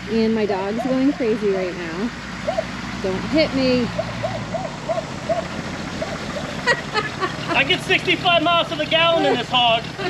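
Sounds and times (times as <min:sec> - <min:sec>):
van engine running: 0:00.0 - 0:10.0
dog barking rapidly: 0:02.4 - 0:02.7, 0:03.9 - 0:06.6.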